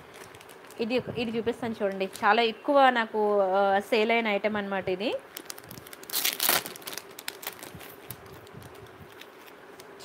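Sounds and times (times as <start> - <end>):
plastic pouches crinkling: 0.0 - 1.0, 5.3 - 10.0.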